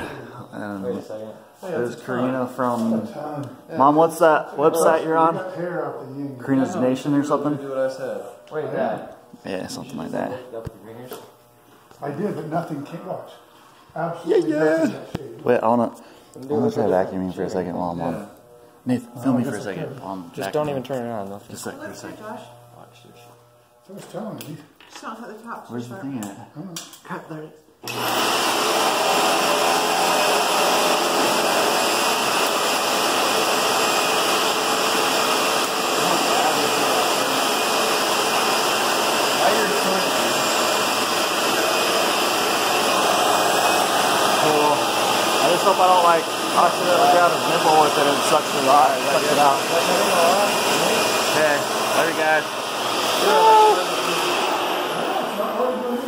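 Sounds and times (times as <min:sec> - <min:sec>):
vacuum cleaner running: 0:00.0 - 0:24.4, 0:27.8 - 0:56.0.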